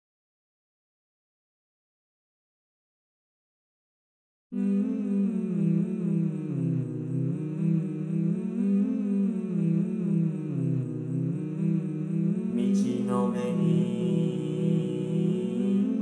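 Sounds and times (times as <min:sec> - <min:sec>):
synthesized male chorus humming: 0:04.6 - 0:16.0.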